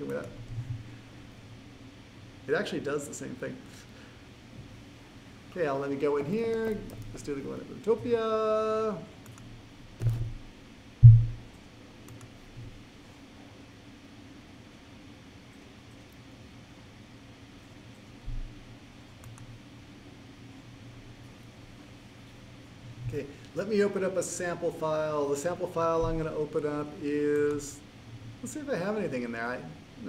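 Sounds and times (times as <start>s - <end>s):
steady low hum: 0.0s - 30.0s
computer mouse clicks: 6.5s - 7.1s, 9.2s - 10.4s, 11.2s - 12.4s, 19.1s - 19.5s
dull thumps: 11.0s - 11.4s.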